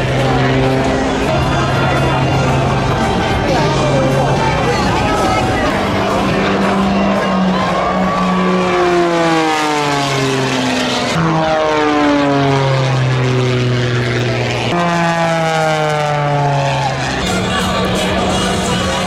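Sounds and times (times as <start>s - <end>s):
biplane propeller engine overhead: 0.0s - 19.0s.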